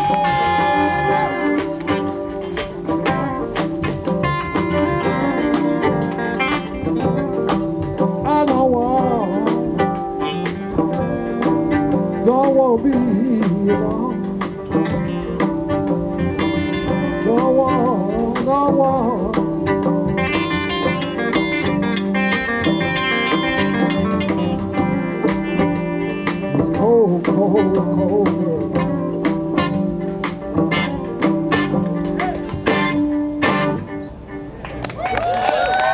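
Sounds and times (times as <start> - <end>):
banjo: 0.0 - 34.8
bowed fiddle melody: 0.0 - 34.8
electric guitar: 0.0 - 35.9.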